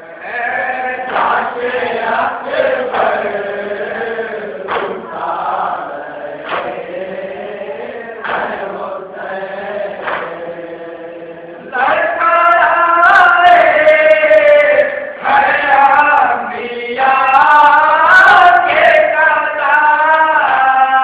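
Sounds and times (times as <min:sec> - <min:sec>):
men chanting in unison: 0:00.0 - 0:21.0
hands slapping chest: 0:04.7 - 0:05.0, 0:06.4 - 0:06.8, 0:10.0 - 0:10.4.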